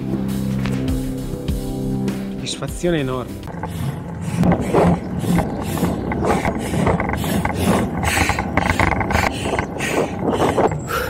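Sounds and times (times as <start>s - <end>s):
bicycle road noise: 2.4s - 11.0s
wind noise: 2.7s - 11.0s.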